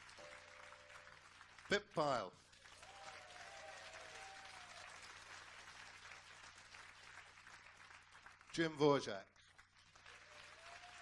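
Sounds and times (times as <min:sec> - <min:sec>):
audience applauding: 0:00.0 - 0:11.0.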